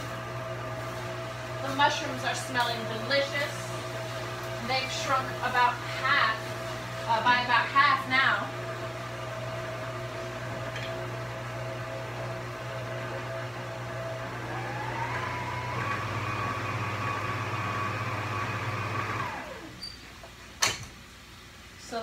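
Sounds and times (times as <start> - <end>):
stand mixer motor whining: 8.5 - 19.8.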